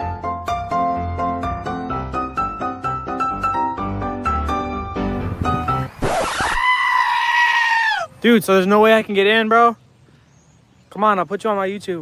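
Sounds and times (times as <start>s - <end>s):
high-pitched scream: 6.0s - 8.1s.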